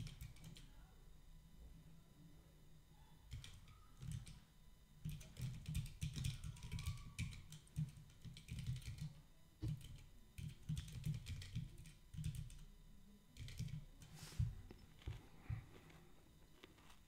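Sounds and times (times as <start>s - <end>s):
typing on computer keyboard: 0.0s - 0.7s, 3.3s - 4.4s, 5.0s - 12.7s, 13.4s - 14.1s.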